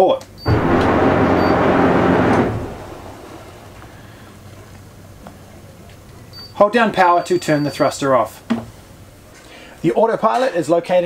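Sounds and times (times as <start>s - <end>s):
electric bow thruster hum: 0.5s - 5.2s
water churning: 0.5s - 5.7s.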